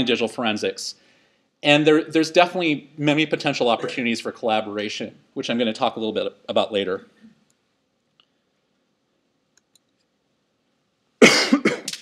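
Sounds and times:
man coughing: 3.8s - 4.2s, 11.2s - 12.0s.

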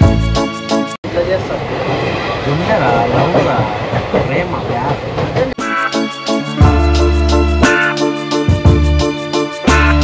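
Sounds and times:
music: 0.0s - 1.0s, 5.6s - 10.0s
train running rumble: 0.0s - 5.6s
passengers' voices: 1.1s - 5.6s.

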